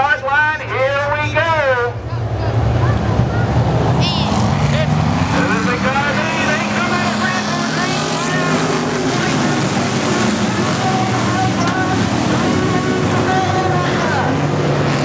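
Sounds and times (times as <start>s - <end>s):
spectator chatter: 0.0s - 14.4s
race car engines droning: 0.0s - 15.0s.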